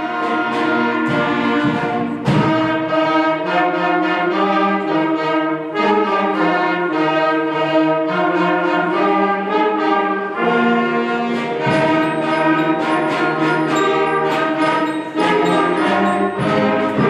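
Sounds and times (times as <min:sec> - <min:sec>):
concert band playing held chords: 0:11.3 - 0:17.0.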